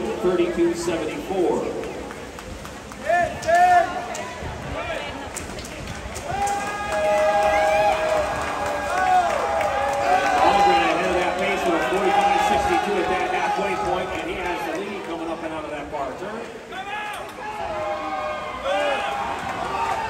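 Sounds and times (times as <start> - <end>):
crowd shouting and cheering: 0.0 - 5.3, 6.2 - 20.0.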